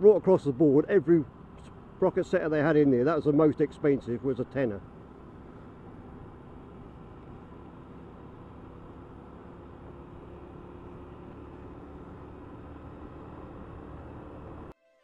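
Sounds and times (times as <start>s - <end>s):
motorcycle engine hum: 0.0s - 14.8s
wind and road noise: 0.0s - 14.8s.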